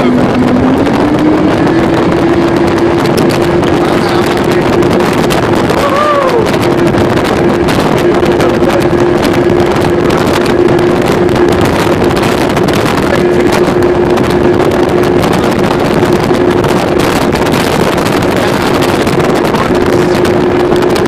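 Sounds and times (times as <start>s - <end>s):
motorboat engine running: 0.0s - 21.0s
wind on microphone: 0.0s - 21.0s.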